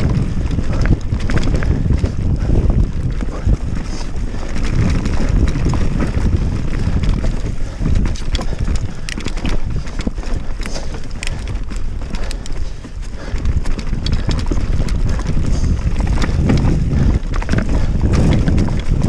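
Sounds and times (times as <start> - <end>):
bike clicking and rattling: 0.0 - 19.0
tyres rolling over dirt and leaves: 0.0 - 19.0
wind buffeting microphone: 0.0 - 19.0.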